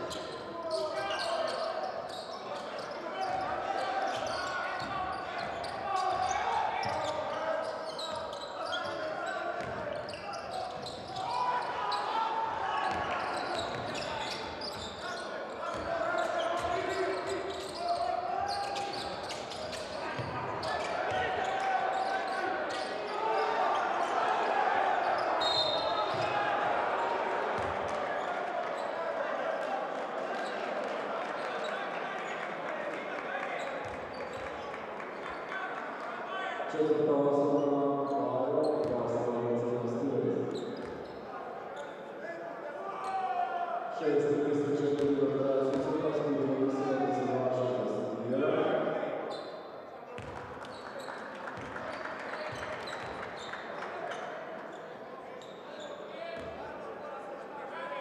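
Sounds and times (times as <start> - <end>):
basketball bouncing on court: 9.6 - 9.9, 50.2 - 50.5
referee's whistle: 25.2 - 26.3.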